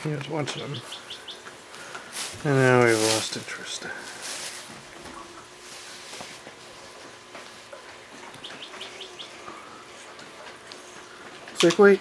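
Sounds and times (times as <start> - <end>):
faint birdsong chirps: 0.5 - 2.1, 8.2 - 11.2.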